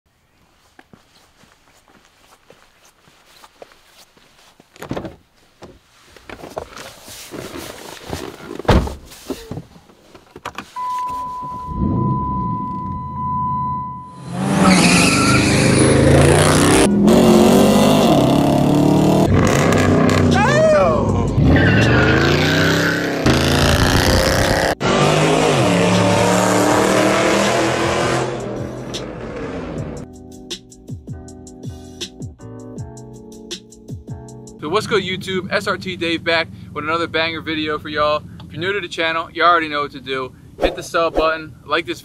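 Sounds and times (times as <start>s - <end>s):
steady beep: 10.8s - 14.5s
car engine revving hard: 14.2s - 20.4s, 21.3s - 30.0s.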